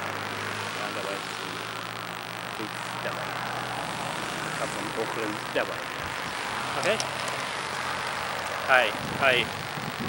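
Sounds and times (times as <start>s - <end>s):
low engine hum: 0.0s - 10.0s
road traffic noise: 0.0s - 10.0s.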